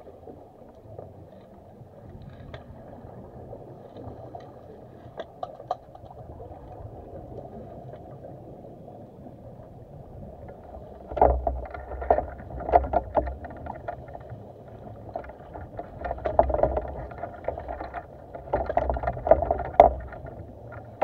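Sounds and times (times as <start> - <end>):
underwater regulator bubbles gurgling: 0.0 - 21.0.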